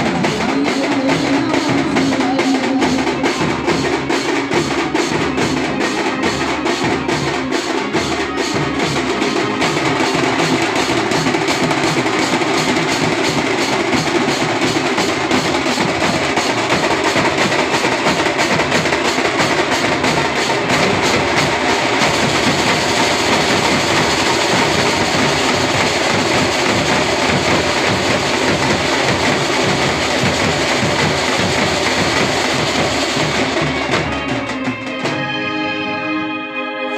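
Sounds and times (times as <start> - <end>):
marching bass drums: 0.0 - 35.1
cymbals clashing: 0.0 - 35.7.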